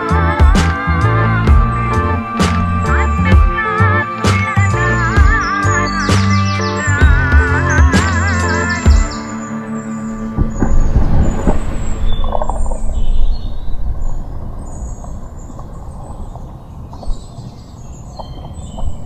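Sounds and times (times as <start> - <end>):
music track: 0.0 - 13.1
birds chirping: 0.0 - 19.0.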